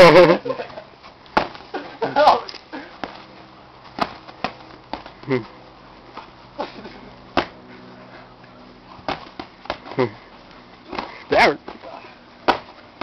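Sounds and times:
person laughing: 0.0s - 0.8s, 6.6s - 7.1s
boxing glove punches: 9.0s - 9.9s, 10.9s - 13.0s.

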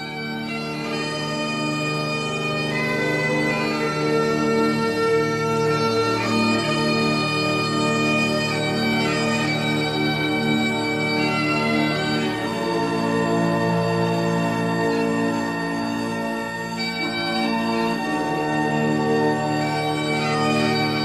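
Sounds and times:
bagpipes playing slow melody: 0.0s - 21.0s.

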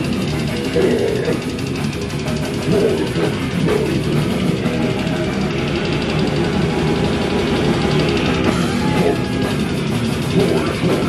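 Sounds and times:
live death metal band playing: 0.0s - 11.0s.

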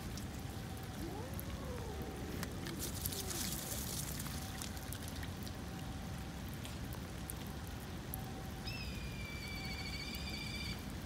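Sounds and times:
drip-like ticks: 0.0s - 1.6s, 2.3s - 8.8s, 10.0s - 11.0s.

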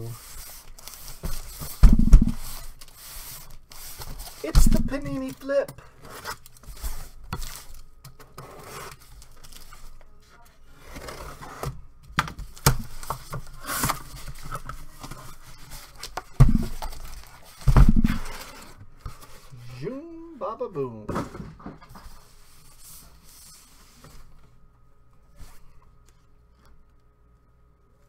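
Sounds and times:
cardboard scraping and tearing: 0.1s - 5.3s, 5.9s - 9.9s, 10.6s - 11.8s, 12.8s - 19.6s
heavy thumps of box: 1.7s - 2.4s, 16.4s - 16.8s, 17.6s - 18.3s.

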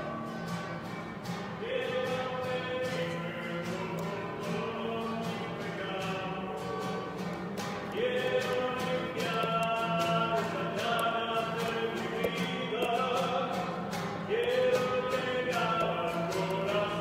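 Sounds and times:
voices singing a hymn: 1.6s - 7.3s, 7.9s - 17.0s.

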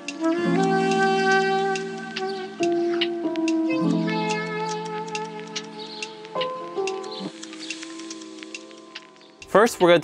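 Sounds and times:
held chords background music: 0.0s - 10.0s
light ticks: 0.0s - 10.0s.

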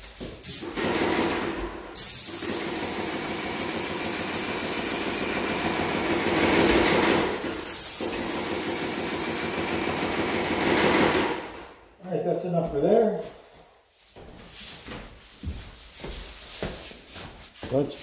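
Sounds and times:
paint sprayer hissing: 0.0s - 1.0s, 1.9s - 5.4s, 7.2s - 9.6s.

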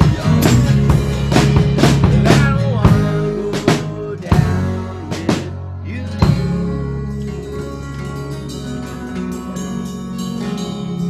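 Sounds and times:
drum kit hits: 0.0s - 7.0s
bass: 0.0s - 11.0s
strummed acoustic guitars: 0.0s - 11.0s.

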